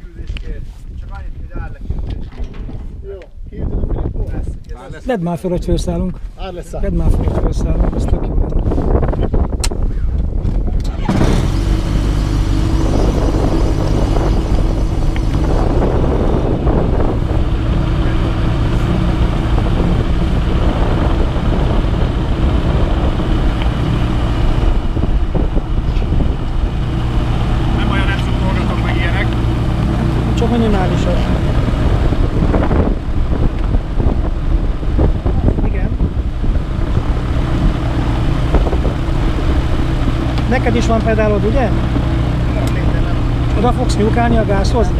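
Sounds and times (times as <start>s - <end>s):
engine and propeller idling: 8.9s - 44.9s.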